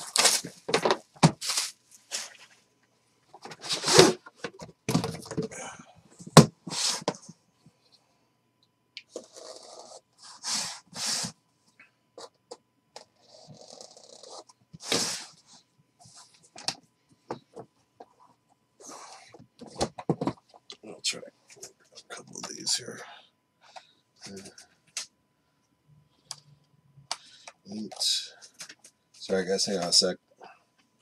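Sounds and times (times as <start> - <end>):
plastic wrap tearing and crinkling: 0.0 - 0.7.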